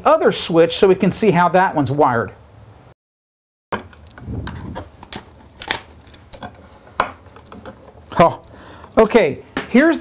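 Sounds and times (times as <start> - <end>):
metal strap and wires scraping: 3.8 - 9.1.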